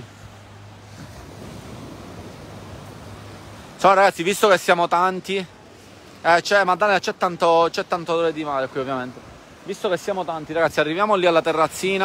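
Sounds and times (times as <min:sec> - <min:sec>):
small waves washing on sand: 0:00.0 - 0:12.0.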